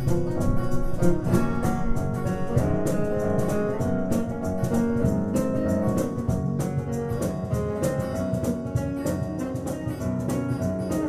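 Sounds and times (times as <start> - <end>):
cajon beat: 0.0 - 11.0
fingerpicked acoustic guitar: 0.0 - 11.0.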